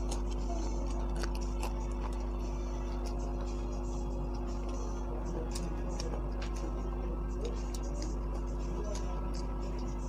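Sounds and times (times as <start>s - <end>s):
crunching and chewing chili pepper: 0.0s - 10.0s
steady low hum: 0.0s - 10.0s.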